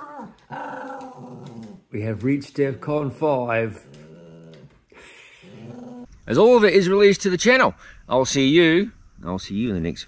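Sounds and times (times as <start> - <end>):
dog whining and grumbling: 0.0 - 1.9, 3.7 - 6.1.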